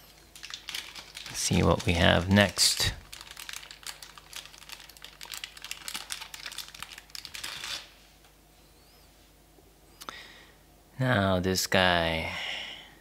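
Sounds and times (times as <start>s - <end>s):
packaging crinkling and clicking: 0.0s - 8.0s.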